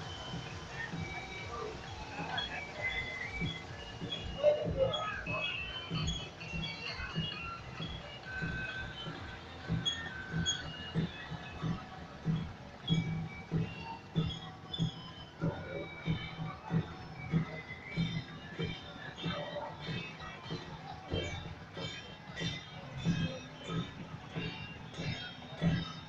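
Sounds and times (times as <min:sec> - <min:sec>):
low drum beat: 0:00.0 - 0:26.0.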